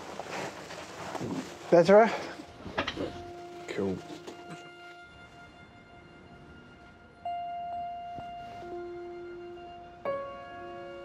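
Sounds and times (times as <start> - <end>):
slow sustained keyboard notes: 0.0 - 11.0.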